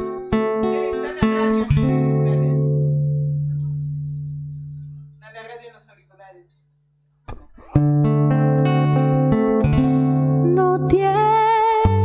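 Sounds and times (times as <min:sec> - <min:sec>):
acoustic guitar chord ringing: 0:00.0 - 0:05.4, 0:07.7 - 0:12.0.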